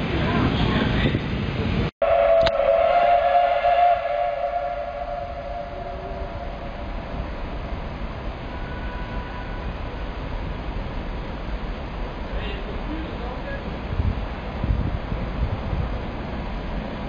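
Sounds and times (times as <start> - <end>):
rail yard rumble: 0.0 - 17.0
train high tone: 2.0 - 10.2.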